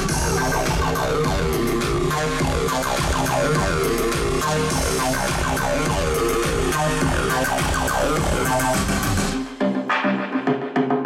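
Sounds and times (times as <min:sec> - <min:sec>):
bass-heavy electronic music: 0:00.0 - 0:11.0.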